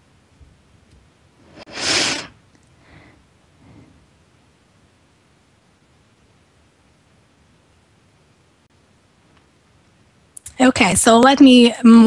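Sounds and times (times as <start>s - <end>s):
faint breathy sounds: 1.5s - 4.2s.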